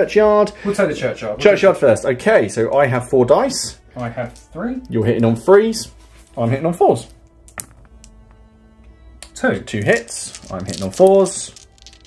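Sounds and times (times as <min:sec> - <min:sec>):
faint background music: 0:00.0 - 0:12.0
dice clattering in a tray: 0:07.1 - 0:08.2, 0:09.7 - 0:12.0.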